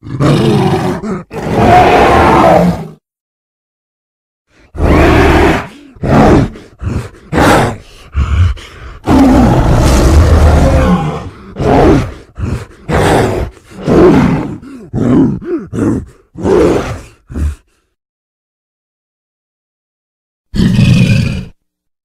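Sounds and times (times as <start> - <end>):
monster roars and grunts: 0.0 - 3.0, 4.6 - 17.8.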